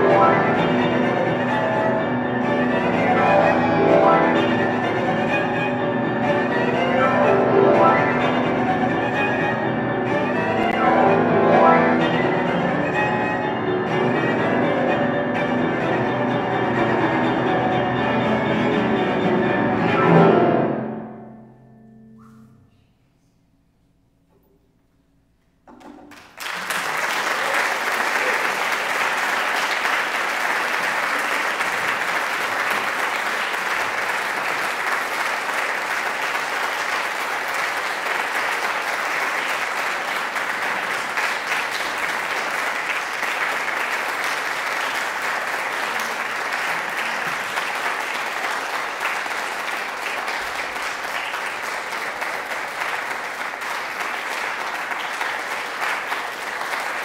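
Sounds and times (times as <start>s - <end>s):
audience applauding: 0.0s - 14.7s, 25.8s - 57.0s.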